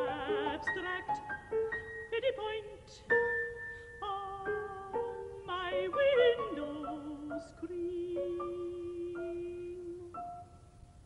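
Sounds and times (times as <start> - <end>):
contralto singing with vibrato: 0.0 - 3.1, 4.0 - 10.4
piano notes: 0.0 - 10.8.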